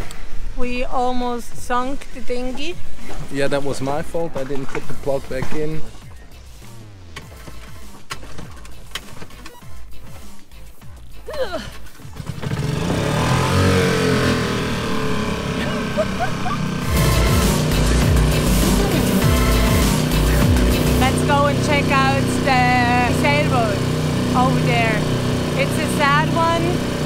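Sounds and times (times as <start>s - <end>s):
outboard motor running: 12.0s - 27.0s.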